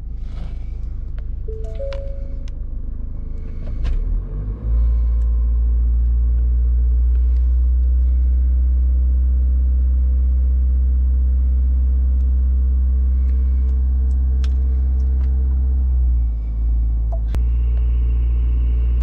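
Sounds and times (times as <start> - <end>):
short tone: 1.5 - 2.5.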